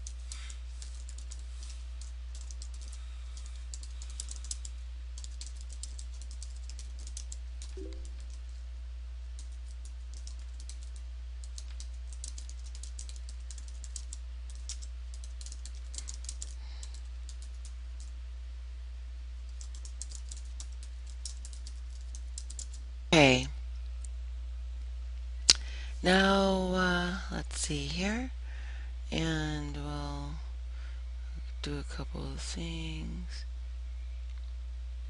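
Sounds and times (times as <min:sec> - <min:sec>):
typing on computer keyboard: 0:00.0 - 0:08.5, 0:09.4 - 0:18.1, 0:19.5 - 0:22.8
steady low hum: 0:00.0 - 0:35.0.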